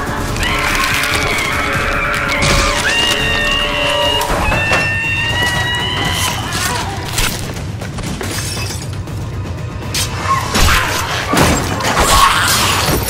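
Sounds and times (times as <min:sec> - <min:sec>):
tense music with high held notes: 0:00.0 - 0:13.0.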